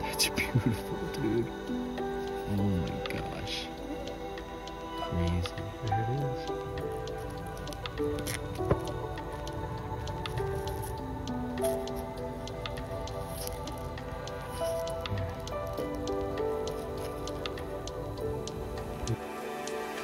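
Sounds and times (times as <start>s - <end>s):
background music with held notes: 0.0s - 20.0s.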